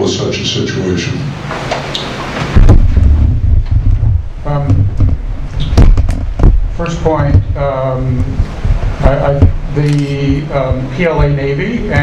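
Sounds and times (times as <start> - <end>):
microphone handling rumble: 1.6 - 12.0.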